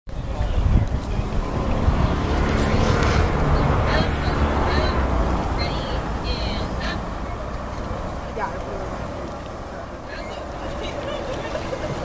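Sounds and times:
wind buffeting microphone: 0:00.1 - 0:09.7
faint indistinct voices: 0:00.1 - 0:12.0.

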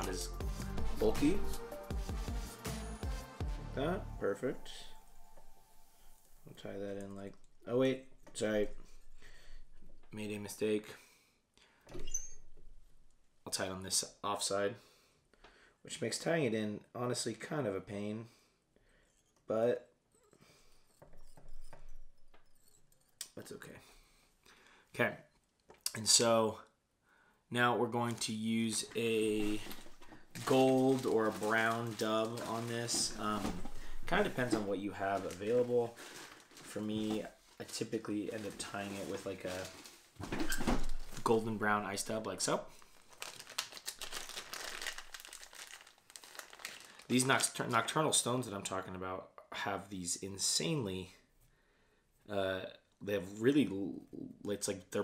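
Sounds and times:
fibres crinkling and crackling: 0:06.2 - 0:10.6, 0:27.6 - 0:48.4.

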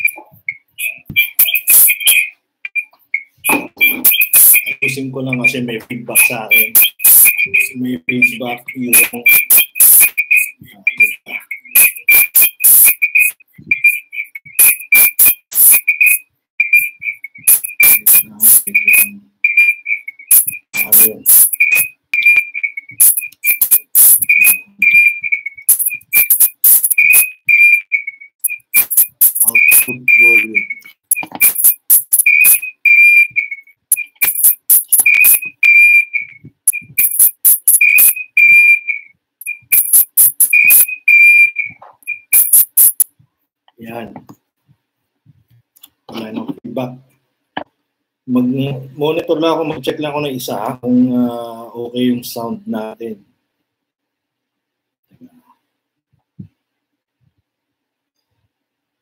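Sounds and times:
choppy high whistling tone: 0:00.0 - 0:43.1
hissy static bursts: 0:00.8 - 0:02.3, 0:03.4 - 0:19.1, 0:20.3 - 0:27.5, 0:28.4 - 0:32.9, 0:33.9 - 0:38.7, 0:39.4 - 0:40.9, 0:42.0 - 0:43.1.

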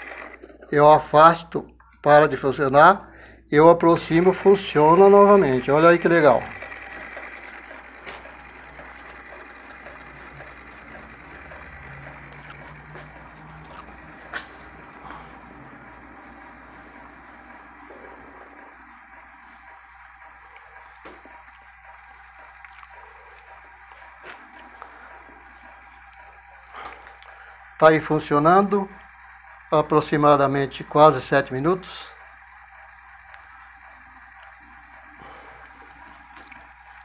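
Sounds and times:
magnet motor whirring: 0:00.0 - 0:00.4, 0:04.0 - 0:37.0.

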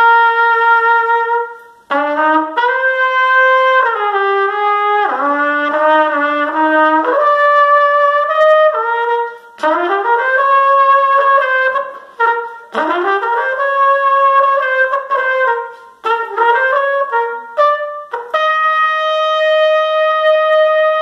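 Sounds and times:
solo trumpet slow melody: 0:00.0 - 0:21.0
short breaths: 0:09.3 - 0:09.6, 0:15.7 - 0:16.0.

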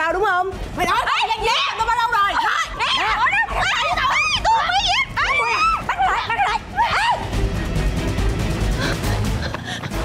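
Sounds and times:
women screaming and shouting: 0:00.9 - 0:07.4.

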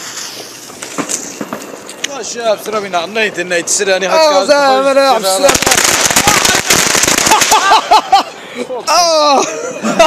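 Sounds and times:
firework fuse hissing: 0:00.0 - 0:04.0, 0:04.8 - 0:07.8.

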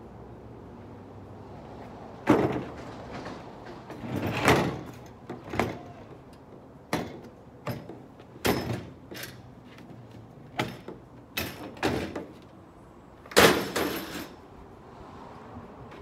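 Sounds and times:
metal gate clunking and scraping: 0:02.2 - 0:06.0, 0:06.8 - 0:12.5, 0:13.3 - 0:14.5.

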